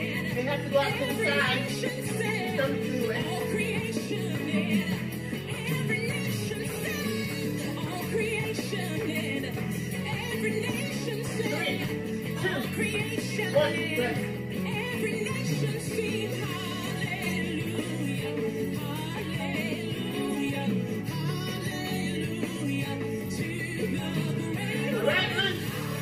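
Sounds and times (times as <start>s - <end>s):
gospel music with singing: 0.0s - 26.0s.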